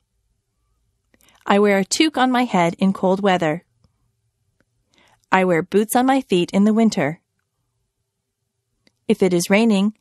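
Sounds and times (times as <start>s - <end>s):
woman speaking: 1.4s - 3.7s, 5.3s - 7.2s, 9.1s - 10.0s.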